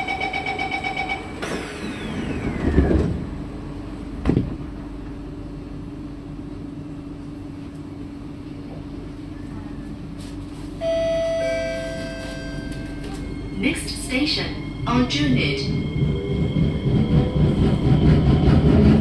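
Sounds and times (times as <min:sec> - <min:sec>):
train humming at platform: 0:00.0 - 0:19.0
train doors sliding shut: 0:01.3 - 0:03.4.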